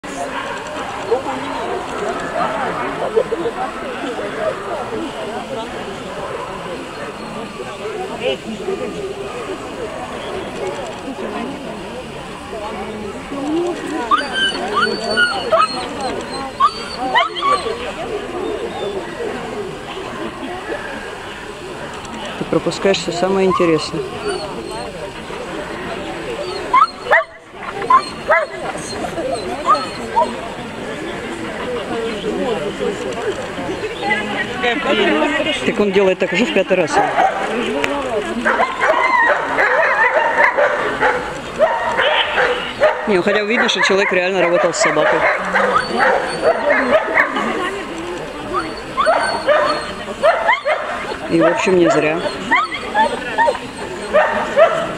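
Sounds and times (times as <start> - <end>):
dog whining and yipping: 14.1 - 17.8, 23.5 - 25.0, 26.4 - 30.4, 44.4 - 47.4, 48.5 - 54.7
dog barking high-pitched: 38.5 - 47.5, 49.0 - 53.6, 54.2 - 54.9.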